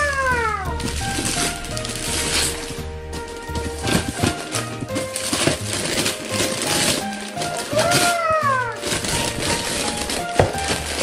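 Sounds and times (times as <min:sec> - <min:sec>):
background music: 0:00.0 - 0:11.0
wrapping paper tearing: 0:00.0 - 0:11.0.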